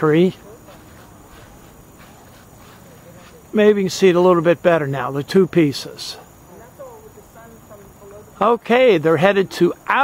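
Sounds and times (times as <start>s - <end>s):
crickets droning: 0.0s - 10.0s.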